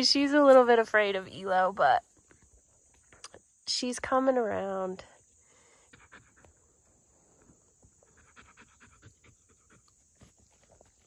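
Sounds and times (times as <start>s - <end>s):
high insect hum: 0.0s - 11.0s
dog panting: 5.9s - 6.7s, 7.9s - 10.3s.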